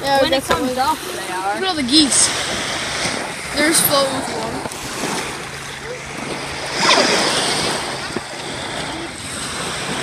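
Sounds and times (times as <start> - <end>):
lake waves washing on shore: 0.0 - 10.0.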